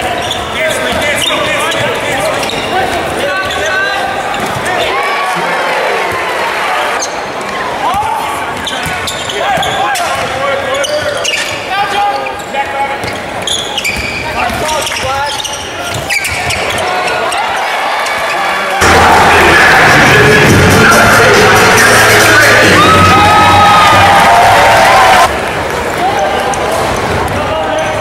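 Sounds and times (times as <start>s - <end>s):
players calling out: 0.0s - 25.3s
loud music with bass beat: 18.8s - 24.3s.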